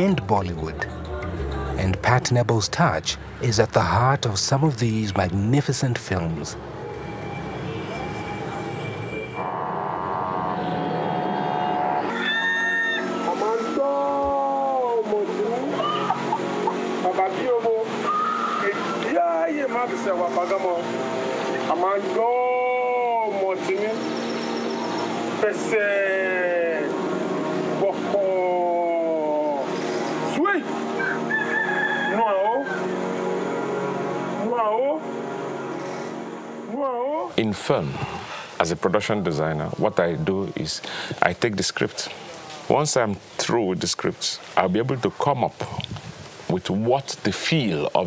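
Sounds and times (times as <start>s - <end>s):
sustained horn tone: 6.6s - 13.8s
rooster crowing: 11.4s - 13.8s, 31.0s - 33.0s.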